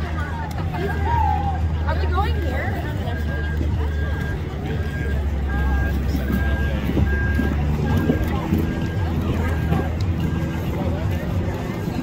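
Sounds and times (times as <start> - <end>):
crowd chatter: 0.0 - 12.0
low engine rumble: 0.0 - 12.0
vehicle backup alarm beeping: 2.1 - 12.0.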